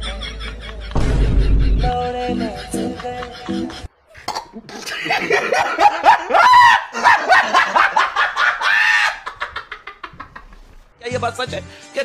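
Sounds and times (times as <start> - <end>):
person laughing hard: 0.0 - 3.9, 4.5 - 10.7.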